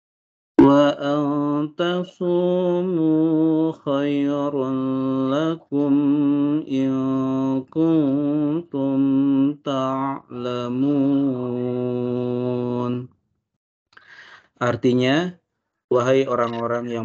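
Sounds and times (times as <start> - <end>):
man chanting melodically: 0.6 - 13.1, 15.9 - 17.0.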